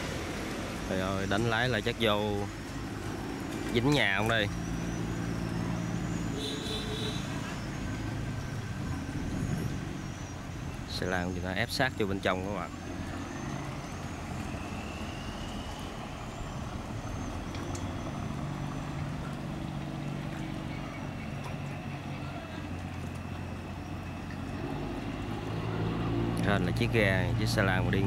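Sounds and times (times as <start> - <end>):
boat engine humming: 0.0 - 28.0.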